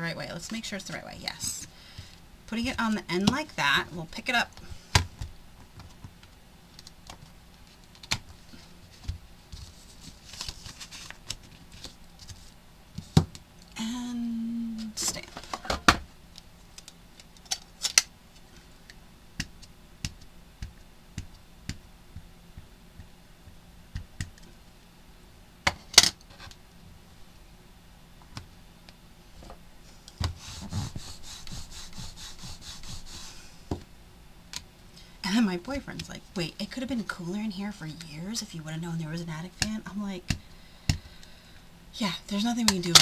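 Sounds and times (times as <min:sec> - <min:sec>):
rubbing sound: 0:30.3 - 0:33.5.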